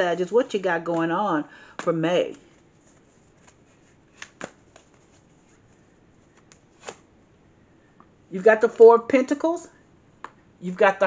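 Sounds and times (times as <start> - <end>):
playing cards snapping: 3.4 - 5.0, 6.4 - 7.0.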